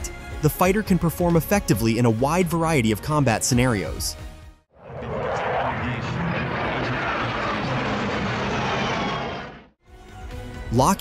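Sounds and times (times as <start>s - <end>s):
jet fighter flying past: 4.8s - 9.7s.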